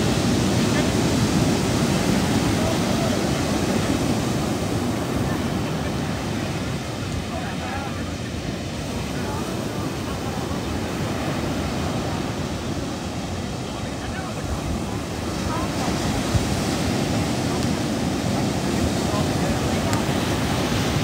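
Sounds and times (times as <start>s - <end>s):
ocean surf breaking: 0.0s - 21.0s
wind buffeting microphone: 0.0s - 21.0s.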